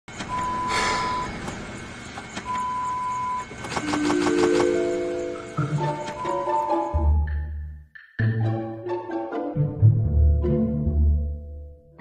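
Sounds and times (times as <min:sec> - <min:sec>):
long electronic beeps: 0:00.2 - 0:07.6
quick clicks: 0:03.5 - 0:04.8
music: 0:04.2 - 0:12.0.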